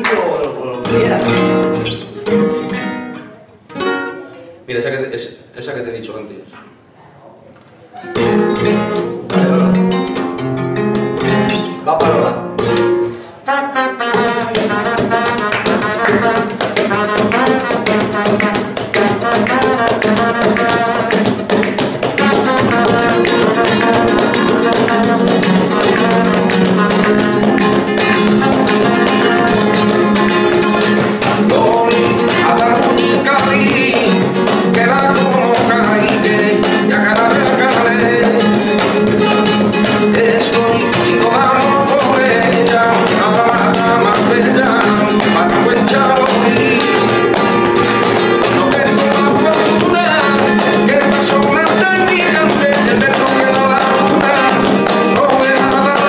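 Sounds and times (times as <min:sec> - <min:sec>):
spanish guitar strumming: 0:00.0 - 0:05.3, 0:07.8 - 0:56.0.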